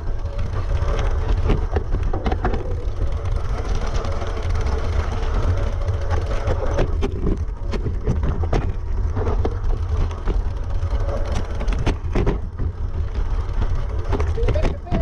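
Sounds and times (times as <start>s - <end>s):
bike rattling over stones: 0.0s - 15.0s
wind rumble on microphone: 0.0s - 15.0s.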